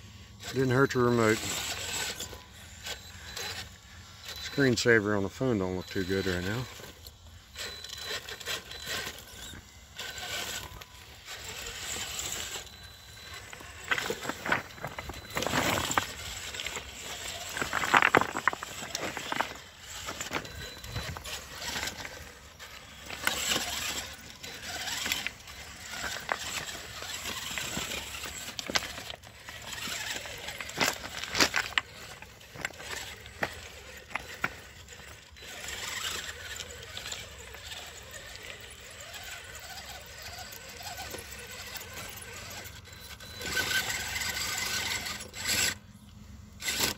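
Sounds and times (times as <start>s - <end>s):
electric motor and gear whine: 0.0s - 46.9s
tyres scraping on stone: 0.8s - 4.6s, 7.6s - 45.8s, 46.6s - 46.9s.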